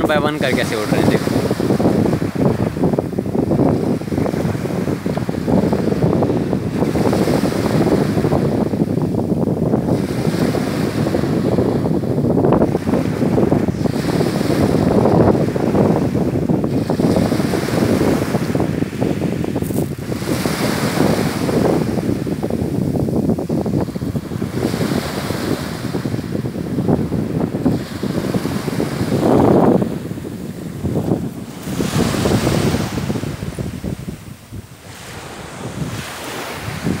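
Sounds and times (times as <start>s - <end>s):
waves washing on pebble beach: 0.0s - 37.0s
wind on microphone: 0.0s - 37.0s.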